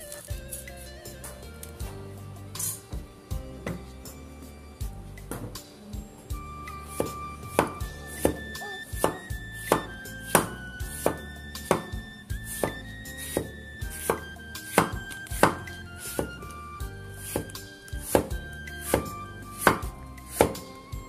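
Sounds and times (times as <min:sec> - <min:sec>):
cleaver chopping on wooden board: 0:06.9 - 0:16.5, 0:17.2 - 0:20.7.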